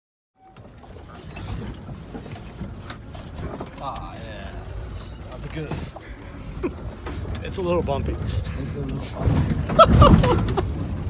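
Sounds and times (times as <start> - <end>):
van body rattles and knocks: 0.4 - 11.0
vehicle cabin low rumble: 0.4 - 11.0.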